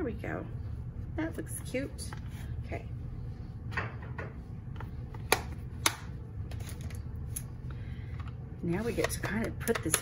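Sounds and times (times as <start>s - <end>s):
low steady hum: 0.0s - 10.0s
sharp clicks of small hard items: 9.0s - 10.0s.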